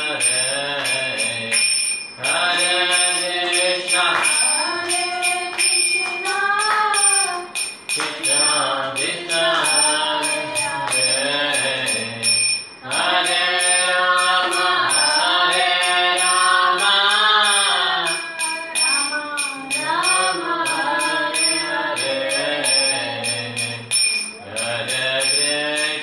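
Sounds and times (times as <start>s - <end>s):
man singing chant: 0.0s - 5.4s, 8.0s - 26.0s
hand cymbals clinking: 0.0s - 26.0s.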